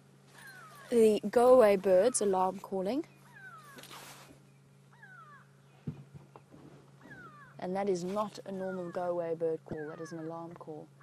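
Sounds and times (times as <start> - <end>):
low steady hum: 0.0 - 11.0
bird alarm calls: 0.4 - 5.9, 7.0 - 7.7, 8.4 - 11.0.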